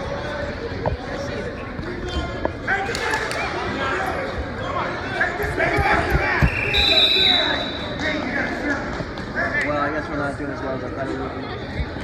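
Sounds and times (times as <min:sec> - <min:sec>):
high whistle: 0:06.5 - 0:07.9.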